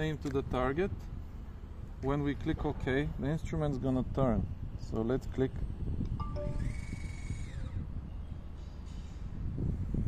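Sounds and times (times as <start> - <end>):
low wind rumble on microphone: 0.0 - 10.0
short beeps: 6.2 - 6.9
servo motors whining: 6.4 - 7.9.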